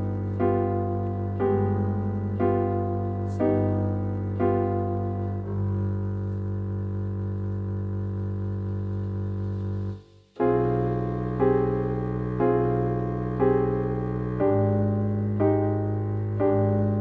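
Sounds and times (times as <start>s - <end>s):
piano and contrabass chords: 0.0s - 17.0s.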